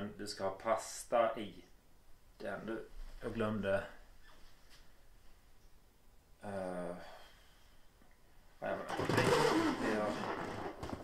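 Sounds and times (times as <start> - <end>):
hands rubbing a balloon: 8.9 - 11.0.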